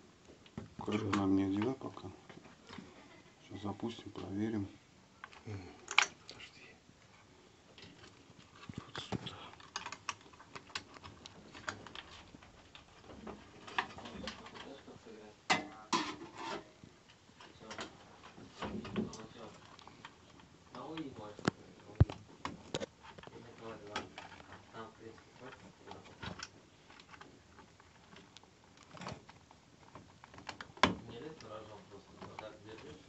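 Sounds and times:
plastic connectors clicking: 5.2s - 6.2s.

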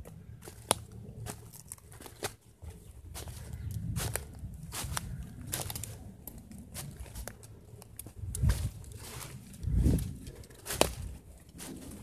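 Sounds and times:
footsteps crunching dry leaves: 0.2s - 12.0s
low rumble: 2.8s - 12.0s.

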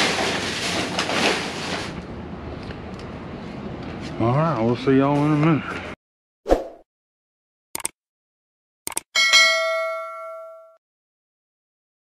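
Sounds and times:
notification bell ding: 9.2s - 10.8s.

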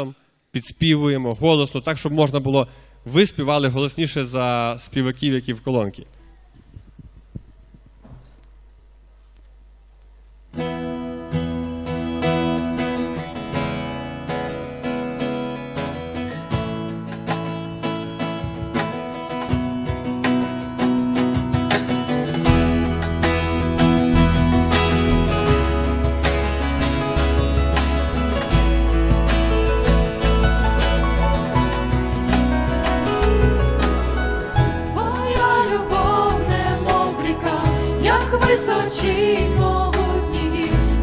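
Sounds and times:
acoustic guitars strumming: 10.5s - 41.0s
low bass notes: 11.6s - 41.0s.

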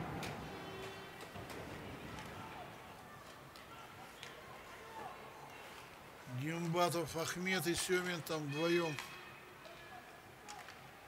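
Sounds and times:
faint ice rink noise: 0.0s - 11.0s.

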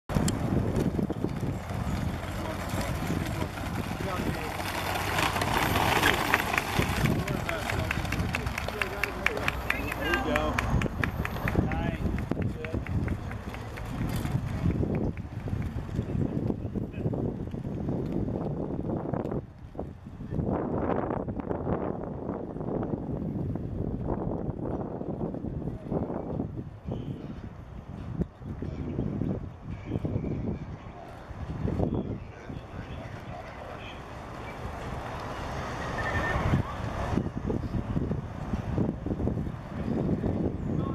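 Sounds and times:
outdoor background noise: 0.0s - 40.9s
people talking and calling out: 1.3s - 15.0s.

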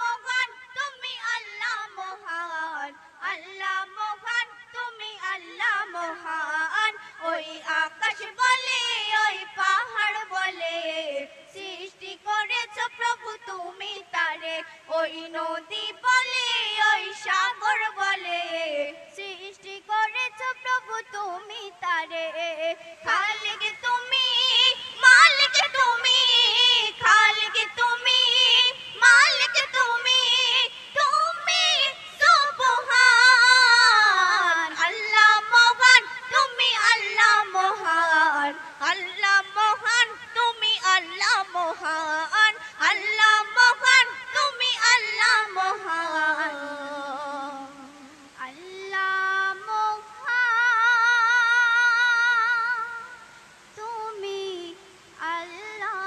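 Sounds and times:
girls singing through microphones: 0.0s - 56.0s.

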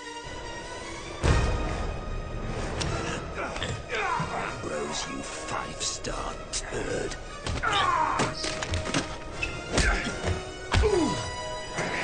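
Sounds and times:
background music: 0.0s - 12.0s
heavy punches landing: 9.7s - 11.2s.

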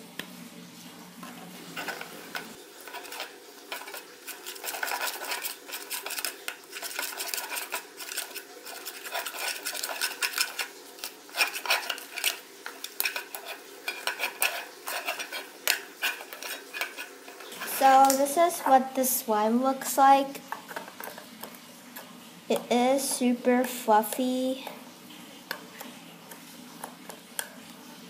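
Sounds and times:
spatula scraping slime in bowl: 1.7s - 18.8s.

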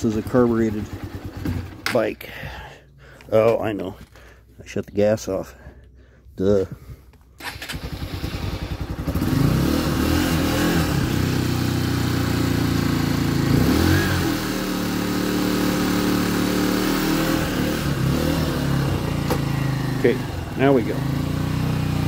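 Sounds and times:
motorcycle engine running and revving: 0.0s - 2.0s, 7.7s - 22.0s
electric starter cranking: 7.4s - 9.3s.

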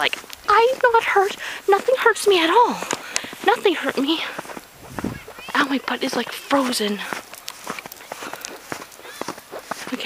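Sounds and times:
footsteps crunching in snow: 0.0s - 10.0s.

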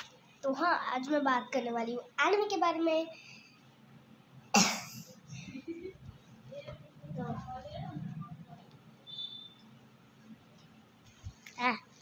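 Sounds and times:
girl coughing: 4.5s - 5.2s.

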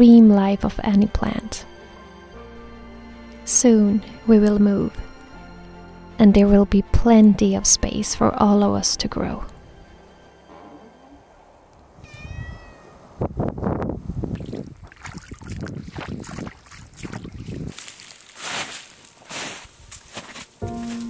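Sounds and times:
short high animal call: 12.0s - 13.0s
boots squelching through mud: 14.4s - 21.0s.

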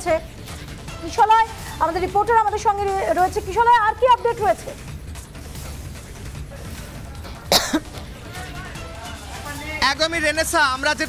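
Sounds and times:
person coughing: 7.5s - 8.0s.

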